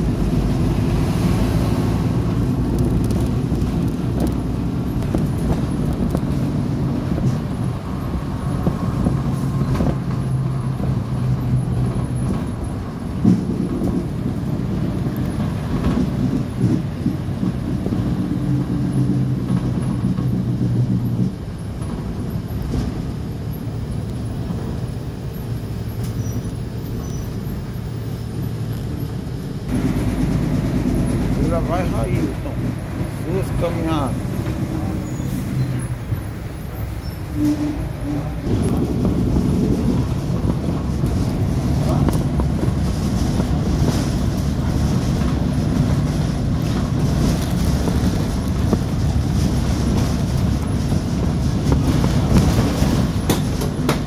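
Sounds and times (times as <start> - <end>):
bus engine hum: 0.0 - 54.0
road noise: 0.0 - 54.0.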